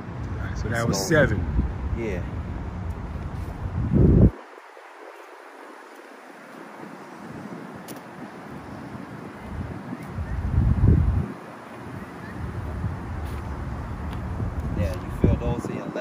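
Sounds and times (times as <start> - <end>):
faint outdoor background noise: 0.0 - 16.0
wind buffeting microphone: 0.0 - 16.0.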